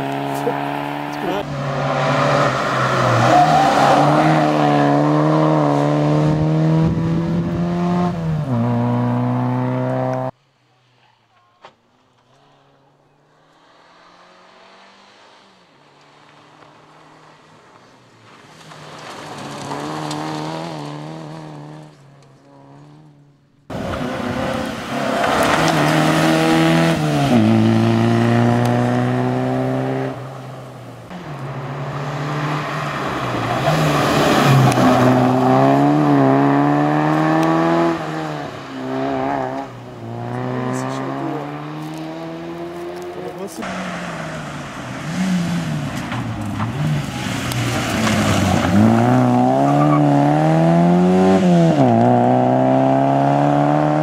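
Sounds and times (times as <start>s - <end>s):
rally car engine at high revs: 0.0s - 10.4s, 16.1s - 30.3s, 31.1s - 54.0s.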